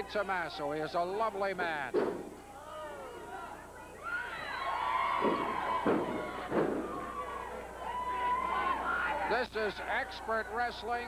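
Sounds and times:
bodies slamming onto ring canvas: 0:01.9 - 0:02.5, 0:05.2 - 0:07.2
crowd shouting: 0:02.3 - 0:11.0.

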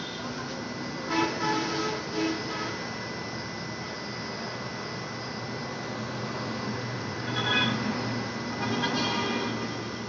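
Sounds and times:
gas dispenser hiss and whine: 0:00.0 - 0:10.0
vehicle horn toots: 0:01.1 - 0:02.8.

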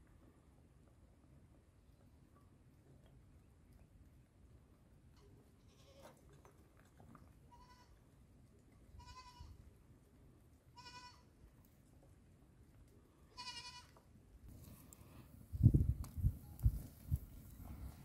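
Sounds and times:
goats bleating: 0:13.3 - 0:14.0.

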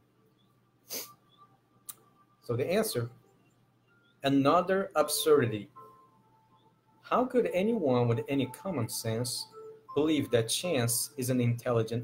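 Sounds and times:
sharp breath through nose: 0:00.8 - 0:01.2.

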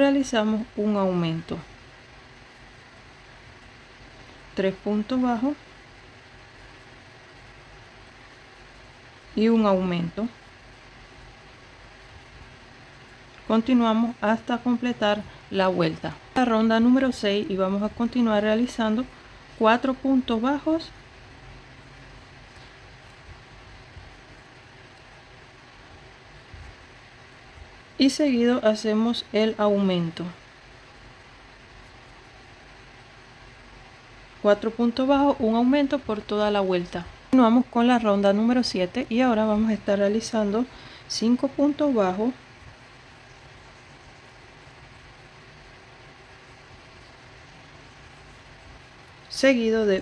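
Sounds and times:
room hiss and hum: 0:00.0 - 0:50.0.

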